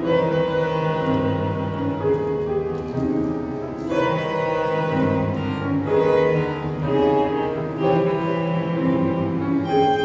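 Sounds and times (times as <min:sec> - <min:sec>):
violin and cello bowing: 0:00.0 - 0:02.5, 0:03.7 - 0:10.0
piano playing: 0:00.0 - 0:10.0.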